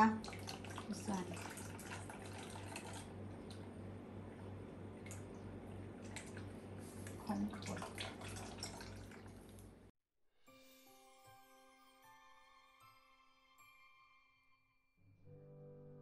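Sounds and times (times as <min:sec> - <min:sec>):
syrup trickling and dripping: 0:00.2 - 0:03.7, 0:05.0 - 0:09.8.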